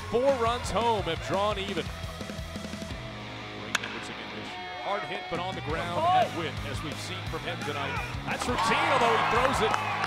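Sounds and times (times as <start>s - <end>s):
background music: 0.0s - 10.0s
metal bat striking ball: 3.7s - 4.2s.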